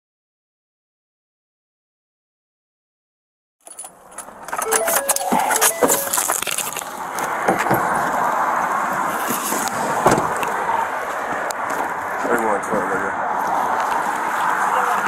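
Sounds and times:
metal gear jangling: 3.6s - 6.9s
street traffic rush: 3.6s - 15.0s.

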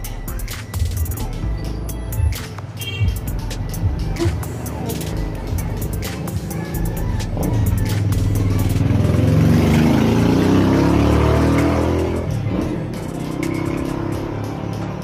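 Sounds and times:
vehicle engine accelerating past: 8.4s - 15.0s.

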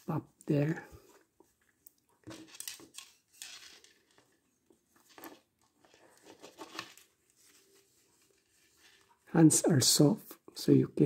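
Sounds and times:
cloth rustling: 0.0s - 9.4s.

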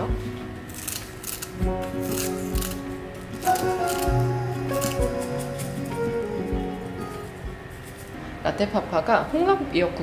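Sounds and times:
background music with low beat: 0.0s - 0.7s, 1.5s - 8.0s
scissors snipping seaweed: 0.7s - 2.8s, 3.4s - 6.0s.

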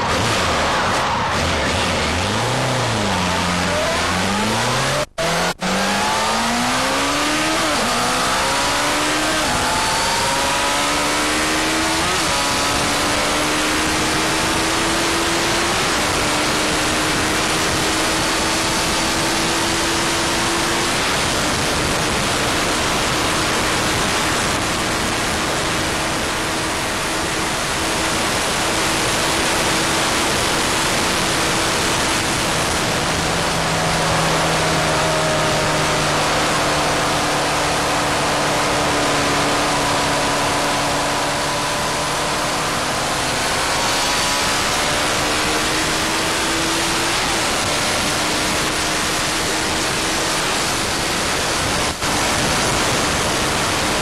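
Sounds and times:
motorcycle engine: 0.0s - 54.0s
wind rushing over microphone: 6.0s - 54.0s.

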